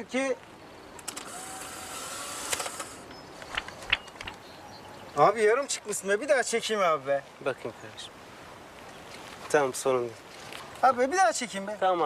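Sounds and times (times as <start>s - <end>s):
outdoor background hiss: 0.0s - 12.0s
camera shutter click: 1.0s - 3.0s.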